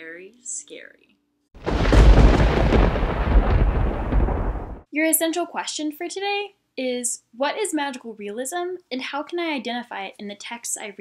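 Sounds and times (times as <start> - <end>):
deep thunder rumble with crackle: 1.6 - 4.9.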